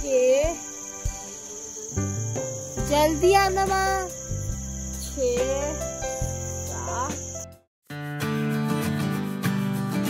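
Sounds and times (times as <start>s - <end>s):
crickets chirping: 0.0s - 7.7s.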